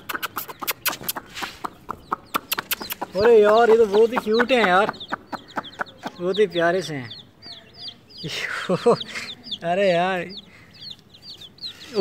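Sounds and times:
baby chicks peeping: 0:00.0 - 0:12.0.

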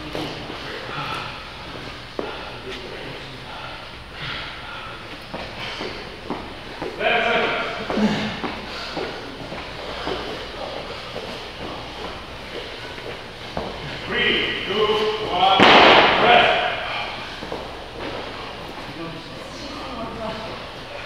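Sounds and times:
sharp thud: 0:15.6 - 0:16.6.

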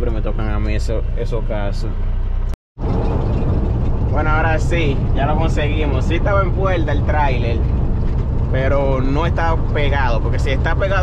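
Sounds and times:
diesel truck engine drone: 0:00.0 - 0:11.0
road noise inside cab: 0:00.0 - 0:11.0.

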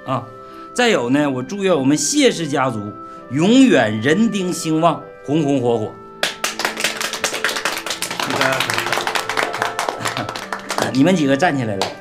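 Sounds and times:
soft background music: 0:00.0 - 0:12.0
group clapping hands: 0:06.2 - 0:12.0.

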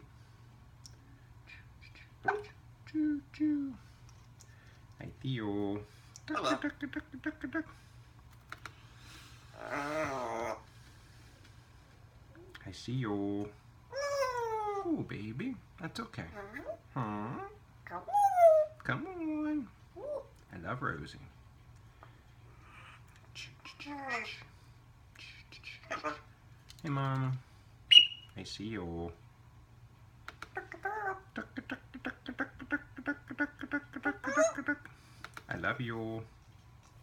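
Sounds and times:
parrot mumbling speech-like sounds: 0:06.3 - 0:07.7, 0:09.5 - 0:10.7, 0:13.9 - 0:15.0, 0:16.2 - 0:19.3, 0:20.0 - 0:20.4, 0:22.7 - 0:24.5, 0:25.2 - 0:26.3, 0:30.5 - 0:34.9
parrot clucking: 0:09.6 - 0:10.7, 0:25.8 - 0:26.3, 0:27.9 - 0:28.4, 0:30.3 - 0:35.5
parrot sharp clicks: 0:30.2 - 0:30.6.

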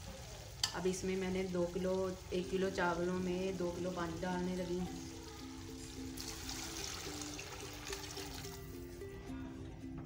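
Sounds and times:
background music: 0:01.5 - 0:10.0
water pouring into metal pot: 0:06.1 - 0:08.7.

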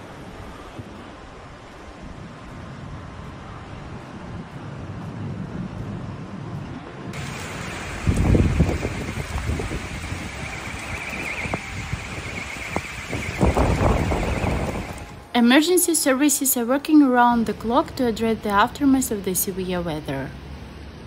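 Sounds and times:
storm wind gusting on microphone: 0:00.0 - 0:15.6
heavy rain: 0:07.2 - 0:15.3
steady high-pitched tone: 0:07.2 - 0:15.4.

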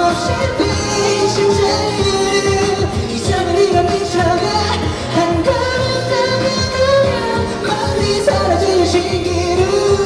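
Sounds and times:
man singing: 0:00.0 - 0:10.0
pop backing track with drum beat: 0:00.0 - 0:10.0.

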